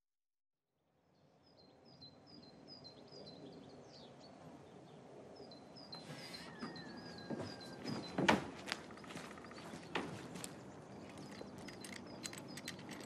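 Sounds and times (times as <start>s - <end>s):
low background hum: 1.2s - 13.0s.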